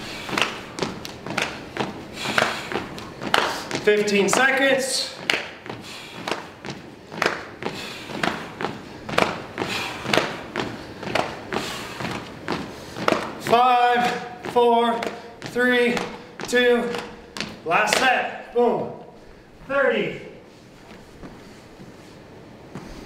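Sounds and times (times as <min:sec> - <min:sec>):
feet thudding on hardwood floor: 0:00.0 - 0:18.2, 0:20.7 - 0:22.0, 0:22.7 - 0:23.0.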